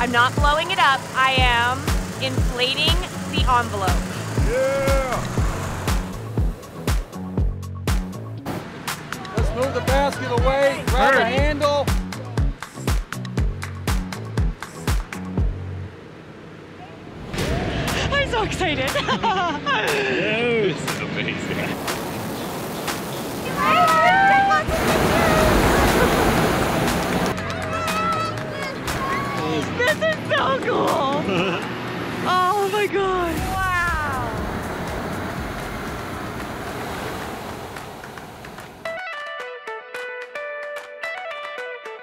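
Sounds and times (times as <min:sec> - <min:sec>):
high-pitched whoops: 0:04.4 - 0:05.3, 0:23.5 - 0:25.9, 0:33.2 - 0:34.4
steady rushing noise: 0:15.9 - 0:27.4, 0:31.6 - 0:38.9
laughter: 0:18.9 - 0:20.7, 0:29.8 - 0:31.7
propane burner roaring: 0:21.8 - 0:23.6.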